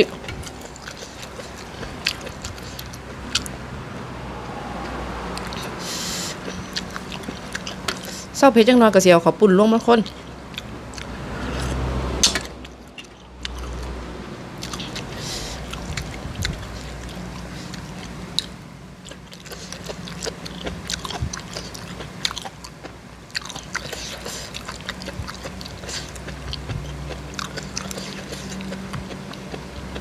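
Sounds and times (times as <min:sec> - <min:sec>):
food crunching: 0:00.0 - 0:03.6, 0:14.6 - 0:30.0
person chewing food: 0:00.0 - 0:03.6, 0:05.4 - 0:08.4, 0:10.0 - 0:14.0, 0:14.6 - 0:30.0.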